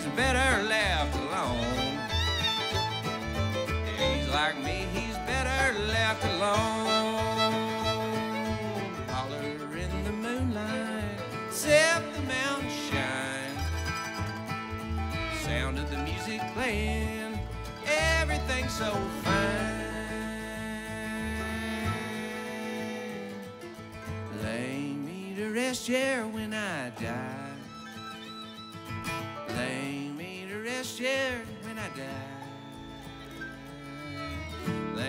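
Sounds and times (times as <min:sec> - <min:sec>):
upright bass: 0:00.0 - 0:27.8, 0:29.1 - 0:35.0
acoustic guitar: 0:00.0 - 0:35.0
bluegrass band playing: 0:00.0 - 0:35.0.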